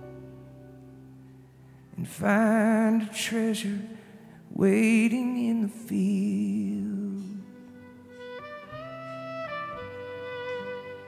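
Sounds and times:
violin long held notes: 0:07.4 - 0:11.0.

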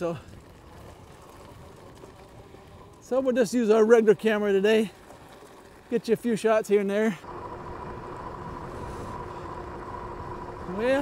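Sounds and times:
tyres rumbling on gravel: 0:00.0 - 0:11.0.

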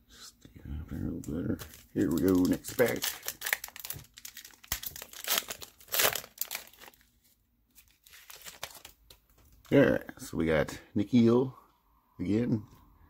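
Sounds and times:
foil wrapper tearing and crinkling: 0:01.6 - 0:07.1, 0:07.8 - 0:09.1.

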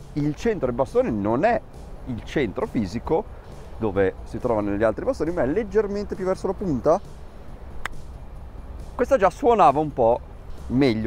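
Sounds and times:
golf club striking ball: 0:07.1 - 0:08.2.

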